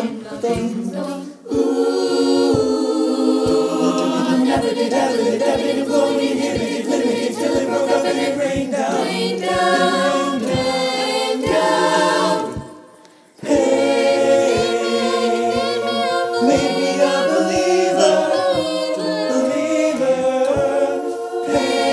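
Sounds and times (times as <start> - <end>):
choir singing a cappella: 0.0 - 21.9
steady low beat: 0.0 - 21.9.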